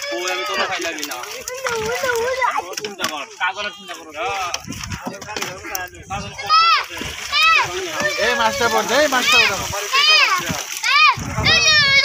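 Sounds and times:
fish thrashing and splashing: 0.0s - 12.0s
high-pitched voices shouting: 6.4s - 12.0s.

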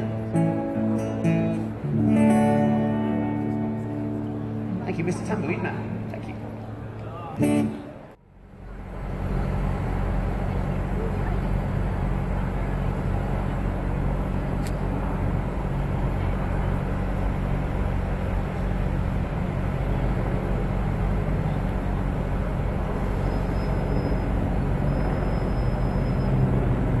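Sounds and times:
city traffic rumble: 0.0s - 27.0s
low engine hum: 0.0s - 27.0s.

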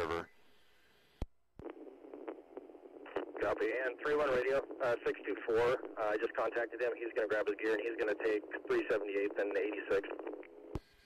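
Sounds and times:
radio channel hiss: 0.2s - 10.5s
radio transmitter click: 1.2s - 6.0s, 7.1s - 10.6s.

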